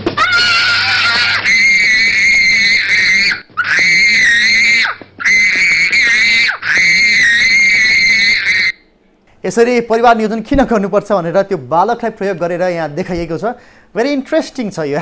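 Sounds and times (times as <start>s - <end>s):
toddler screaming: 0.1s - 8.8s
quick breaths: 13.6s - 14.0s.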